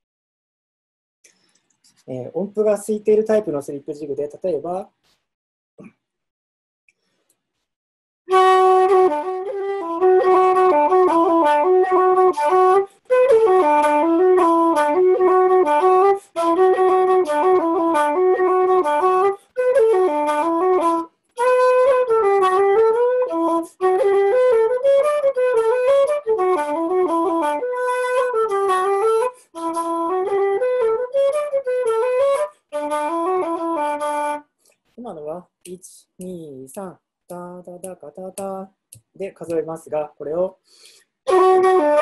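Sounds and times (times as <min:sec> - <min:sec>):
wooden flute playing a jig: 0:08.3 - 0:34.5, 0:41.3 - 0:42.0.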